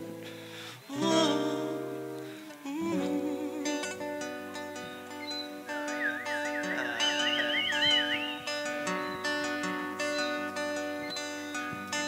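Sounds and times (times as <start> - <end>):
acoustic guitar: 0.0 - 12.0
person whistling a melody: 5.3 - 9.5.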